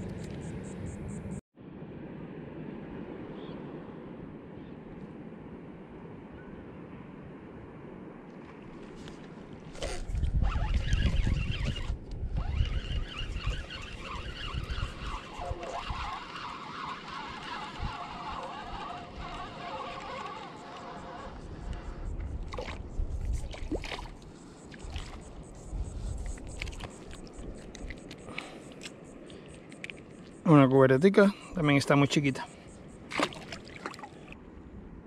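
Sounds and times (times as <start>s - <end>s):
wind rumble on microphone: 0.0s - 29.2s
fishing reel whirring: 9.7s - 23.4s
water splashes: 22.5s - 25.3s, 33.1s - 34.4s.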